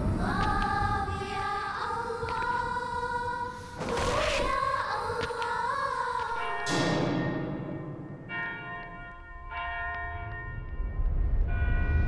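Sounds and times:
church bell ringing: 6.3s - 12.0s.

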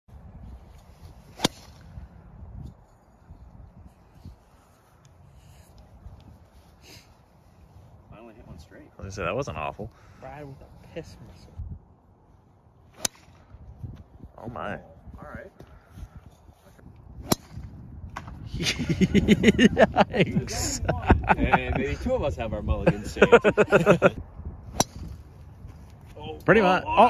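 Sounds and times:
golf club striking ball: 1.4s - 1.8s, 24.7s - 25.2s.

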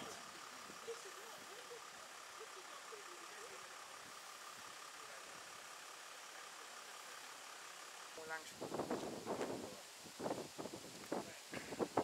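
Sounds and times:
faint distant voices: 0.0s - 8.6s
faint outdoor background hiss: 0.0s - 12.0s.

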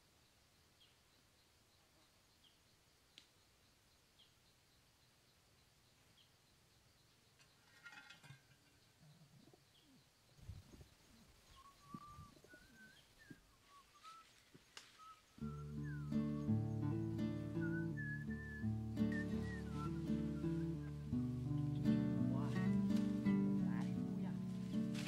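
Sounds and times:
small birds chirping: 8.6s - 25.0s
pigeon cooing: 11.6s - 14.2s, 15.4s - 25.0s
guitar music: 15.4s - 25.0s
pigeon scuffling: 19.0s - 25.0s.

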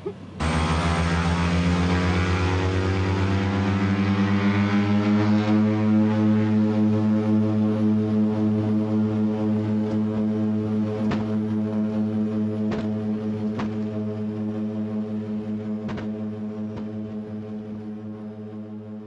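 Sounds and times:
propeller engine drone: 0.0s - 19.0s.

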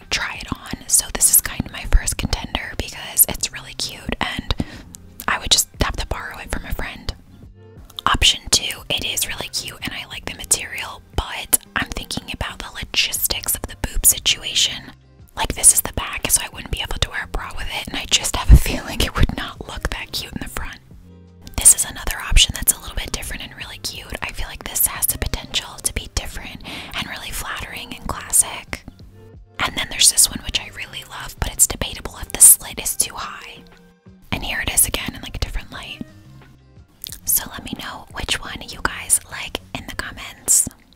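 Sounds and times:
woman whispering: 0.0s - 7.2s, 7.9s - 20.8s, 21.5s - 29.0s, 29.6s - 33.7s, 34.3s - 36.1s, 37.1s - 40.9s.

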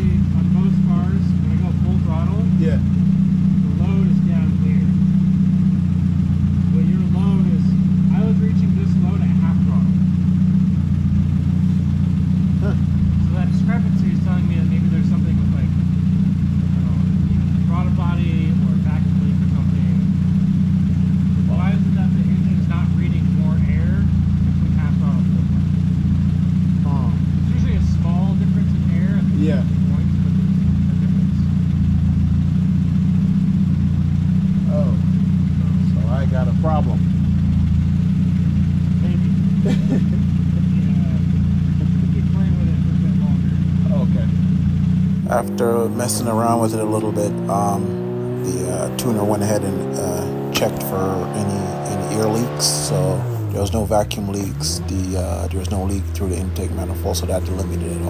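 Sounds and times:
muffled voices talking: 0.0s - 3.0s, 3.6s - 5.1s, 6.6s - 10.1s, 12.5s - 15.9s, 16.7s - 20.1s, 21.4s - 25.5s, 26.8s - 30.3s, 34.6s - 37.1s, 38.9s - 44.4s, 45.2s - 58.0s
car engine running steadily: 0.0s - 58.0s.

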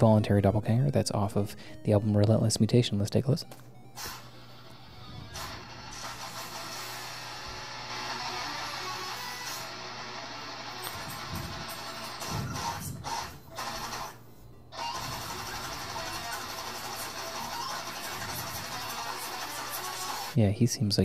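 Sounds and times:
distorted electric guitar riff: 4.0s - 14.2s, 14.8s - 20.4s.

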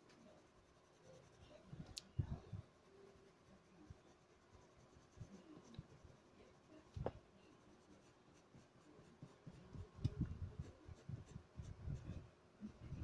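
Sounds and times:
pencil scratching on paper: 0.1s - 13.0s.

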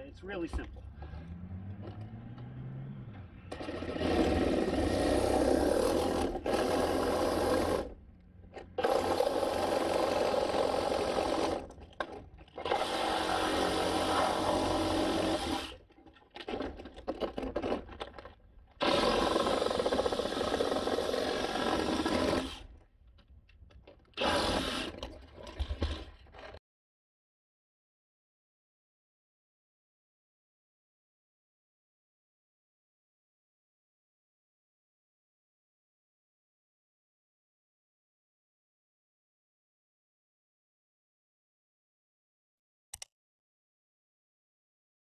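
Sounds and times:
reciprocating saw cutting vinyl: 3.4s - 8.0s.

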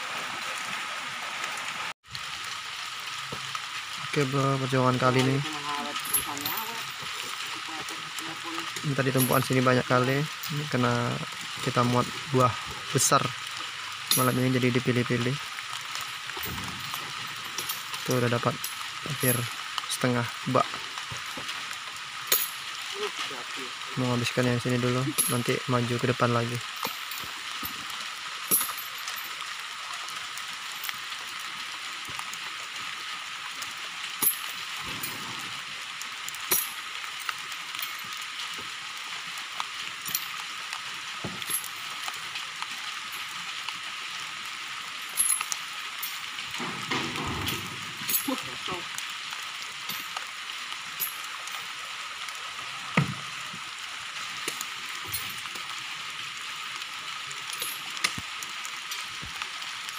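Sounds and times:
heavy rain hissing: 0.0s - 59.9s.

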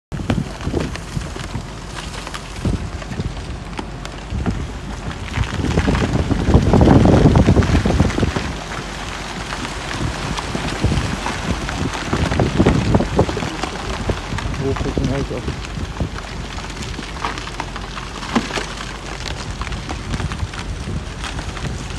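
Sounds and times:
pack ice crunching against ship hull: 0.2s - 21.9s.

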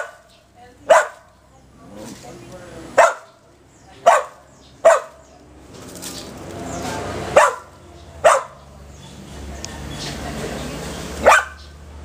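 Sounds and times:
dry leaves rustling: 0.0s - 3.6s, 4.9s - 8.0s
dog barking sharply: 0.9s - 1.3s, 3.0s - 3.4s, 4.0s - 5.2s, 7.3s - 8.6s, 11.2s - 11.7s.

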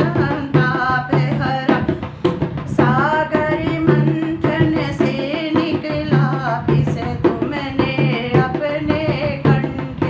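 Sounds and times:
woman singing: 0.0s - 2.1s, 2.7s - 10.0s.

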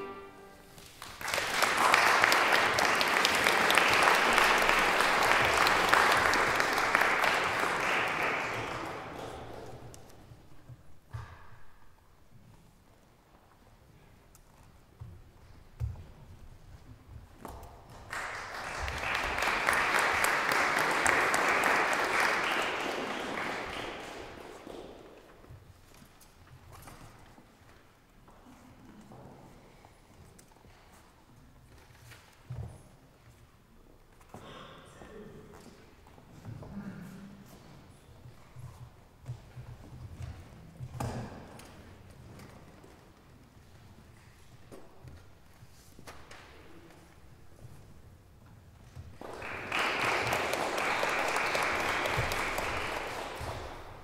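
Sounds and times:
audience applause: 0.8s - 9.7s, 18.1s - 25.0s, 49.2s - 54.0s.

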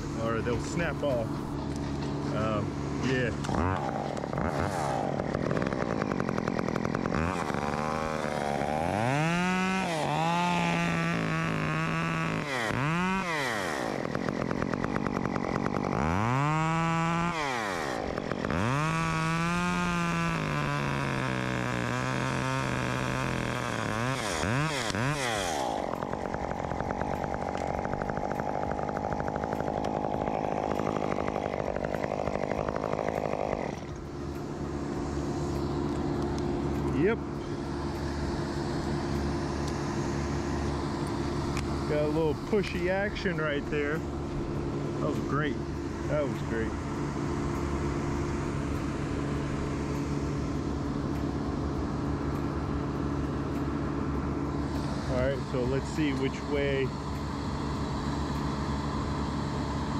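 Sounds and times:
chainsaw idling: 0.0s - 59.9s
chainsaw revving: 0.0s - 59.9s.

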